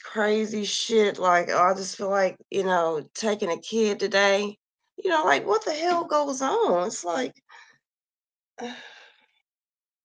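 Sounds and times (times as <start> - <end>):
woman sighing: 8.6 - 9.0.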